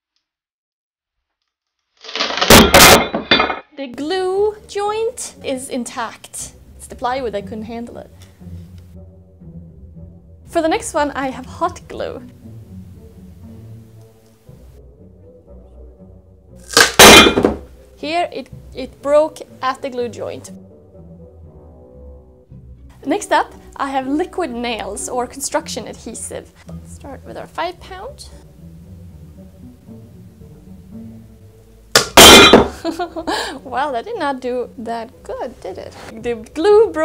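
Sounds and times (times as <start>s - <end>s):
wood joint cracking: 2.0s - 3.6s, 16.6s - 17.6s
board and weights crashing: 2.1s - 3.6s, 16.8s - 17.7s, 32.0s - 32.9s
faint background music: 3.6s - 37.0s
sudden loud crack: 16.7s - 17.6s, 32.0s - 32.8s.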